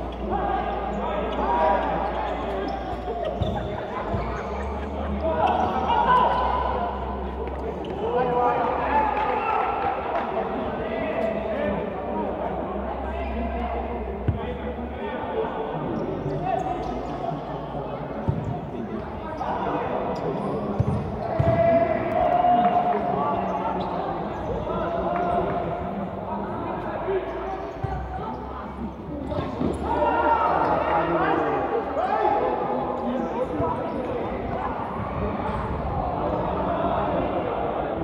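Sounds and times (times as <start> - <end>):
people shouting in a gymnasium: 0.0 - 38.0.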